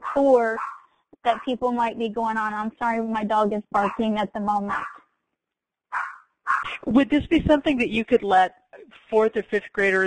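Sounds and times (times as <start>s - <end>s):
dog barking: 0.0s - 1.5s, 3.8s - 5.0s, 5.9s - 6.7s.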